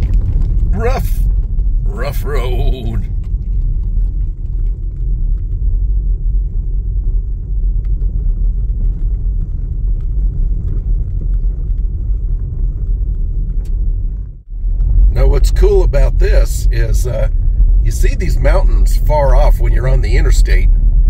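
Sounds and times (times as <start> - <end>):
tyres rumbling on dirt road: 0.0 - 21.0.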